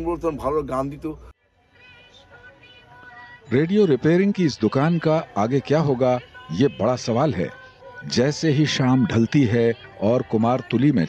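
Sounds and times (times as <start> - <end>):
man speaking: 0.0 - 1.3, 3.5 - 11.0
faint music with held tones: 0.0 - 11.0.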